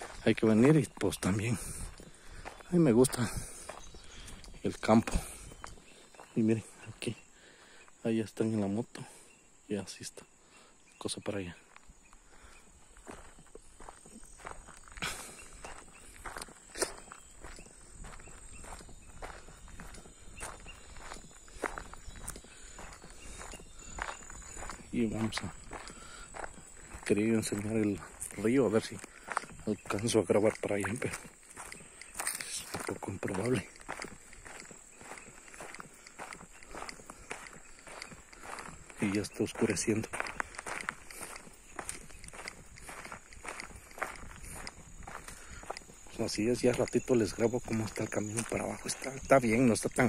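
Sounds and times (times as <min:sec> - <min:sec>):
footsteps on dirt road: 0:00.0 - 0:50.0.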